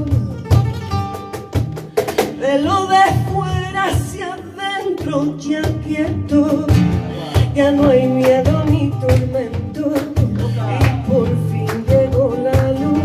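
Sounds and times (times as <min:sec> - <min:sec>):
woman singing: 0:00.0 - 0:00.7, 0:02.2 - 0:13.0
cajon drum: 0:00.0 - 0:13.0
flamenco guitar: 0:00.0 - 0:13.0
rhythmic hand-clapping: 0:06.8 - 0:13.0.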